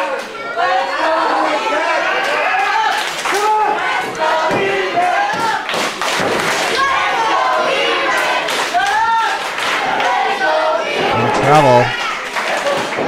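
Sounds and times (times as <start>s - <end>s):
crowd calling out: 0.0s - 13.0s.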